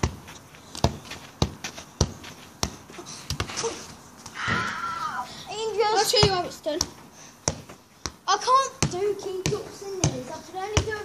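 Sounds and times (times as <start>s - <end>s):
foot kicking football: 0.0s - 4.8s, 6.0s - 11.0s.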